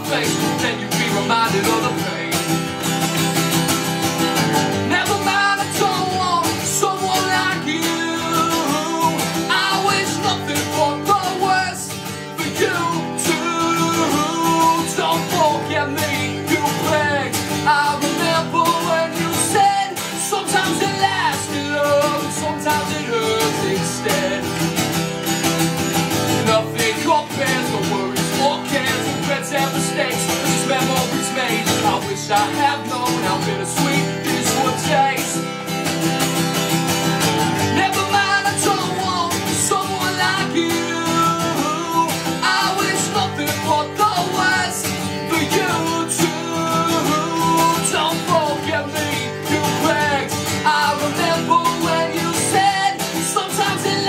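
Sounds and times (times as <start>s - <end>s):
man singing: 0.0s - 54.0s
strummed acoustic guitar: 0.0s - 54.0s.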